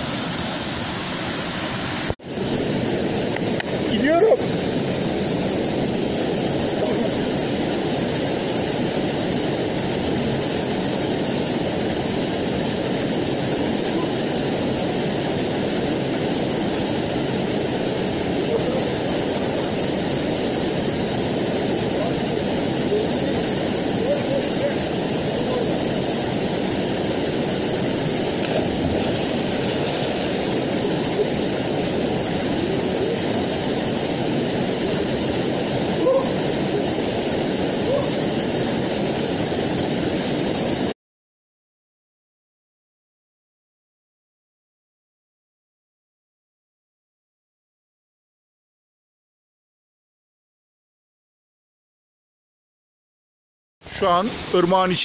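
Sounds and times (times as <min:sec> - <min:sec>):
waterfall rushing: 0:00.0 - 0:40.9, 0:53.8 - 0:55.0.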